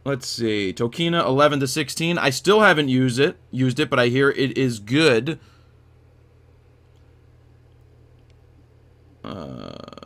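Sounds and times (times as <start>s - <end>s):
faint low hum: 0.0s - 10.0s
man groaning uhh: 9.2s - 10.0s.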